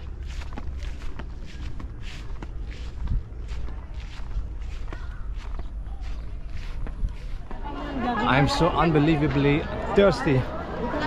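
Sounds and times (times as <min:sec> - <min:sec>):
footsteps on grassy path: 0:00.0 - 0:10.6
low steady rumble: 0:00.0 - 0:11.0.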